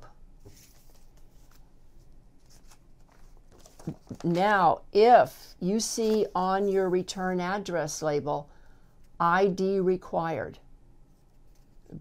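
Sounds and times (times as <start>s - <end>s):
paper envelopes rustling: 0.4s - 4.4s, 6.0s - 6.5s.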